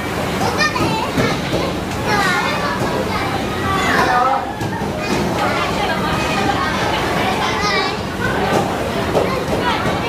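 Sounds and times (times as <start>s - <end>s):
children calling out and chattering: 0.0s - 10.0s
children playing: 0.0s - 10.0s.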